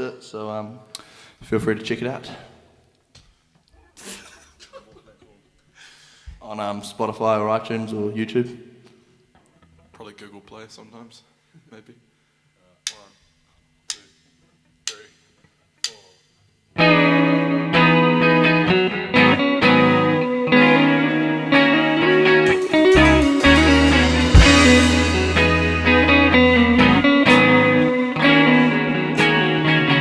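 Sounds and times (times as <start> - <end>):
drumstick clicks: 12.9 - 13.2, 13.9 - 14.2, 14.8 - 15.2, 15.8 - 16.3
indie rock band playing: 16.8 - 30.0.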